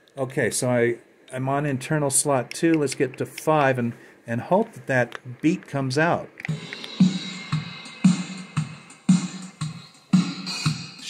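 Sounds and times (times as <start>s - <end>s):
swing drum beat: 6.4s - 11.0s.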